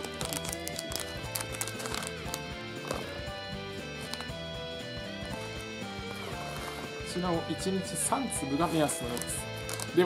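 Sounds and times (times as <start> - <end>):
foil pouch crinkling: 0.0 - 3.1, 8.9 - 10.0
background music with held notes: 0.0 - 10.0.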